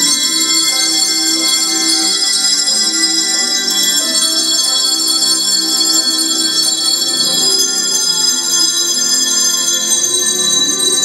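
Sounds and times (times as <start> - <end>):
handbell choir ringing: 0.0 - 11.0.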